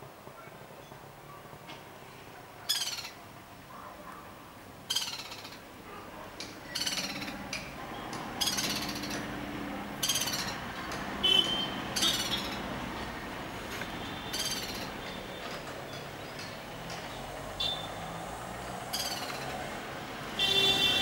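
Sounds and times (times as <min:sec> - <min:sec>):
woodpecker calling: 0:02.7 - 0:03.2, 0:04.8 - 0:05.7, 0:06.4 - 0:12.9, 0:14.0 - 0:18.1, 0:18.9 - 0:19.7.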